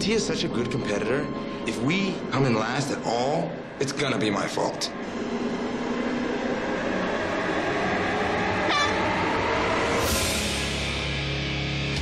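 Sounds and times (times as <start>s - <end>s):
rush of noise: 0.0s - 11.6s
horn long steady blast: 1.0s - 11.2s
rising whistle: 5.2s - 10.5s.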